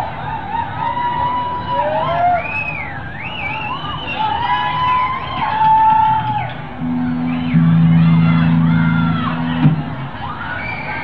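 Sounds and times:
electric guitar feedback squeal: 6.2s - 9.9s
distorted rock band playing: 6.2s - 10.2s.

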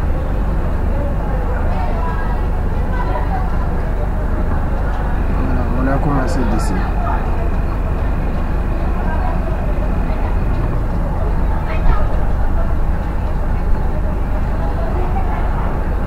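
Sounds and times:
background rumble and hiss: 0.0s - 16.0s
indistinct voices: 0.0s - 16.0s.

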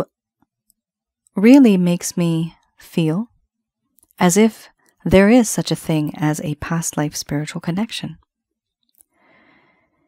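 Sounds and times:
soft breath in: 9.1s - 10.0s.

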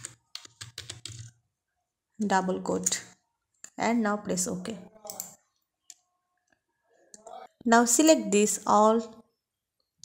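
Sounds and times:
keyboard typing: 0.0s - 1.4s.

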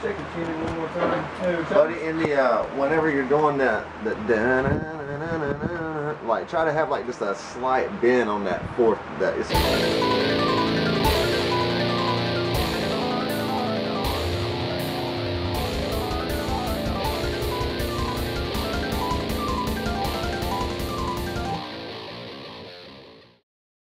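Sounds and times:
drum kit beat: 9.5s - 22.1s
electric guitar: 9.5s - 23.4s.

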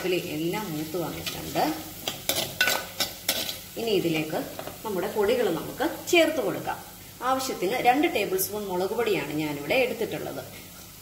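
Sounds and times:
food sizzling in hot oil: 0.0s - 11.0s
spoon scraping a pan: 0.8s - 3.7s.

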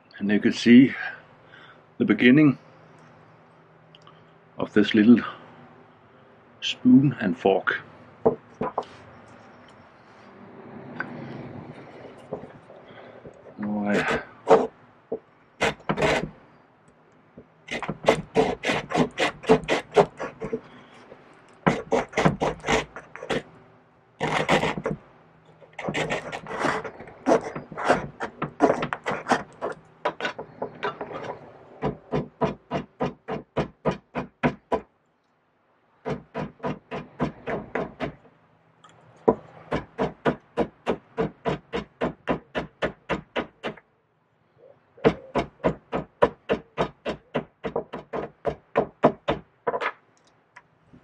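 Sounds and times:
hand saw rasping through wood: 13.9s - 14.7s, 15.6s - 16.3s, 17.7s - 20.7s, 21.6s - 23.5s, 24.2s - 25.0s, 25.6s - 34.8s, 36.1s - 38.2s.

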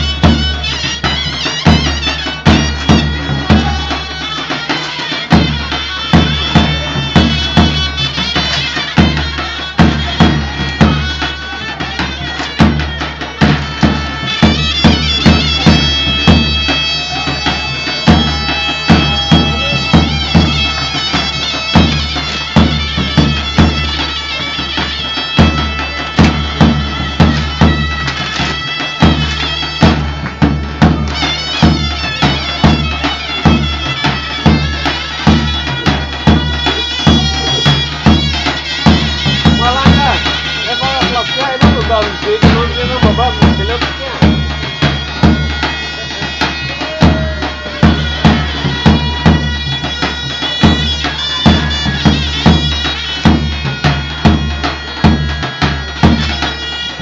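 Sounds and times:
nasal reed pipes playing: 0.0s - 57.0s
bass drum beating: 12.6s - 23.8s, 34.4s - 45.7s, 46.5s - 56.4s.

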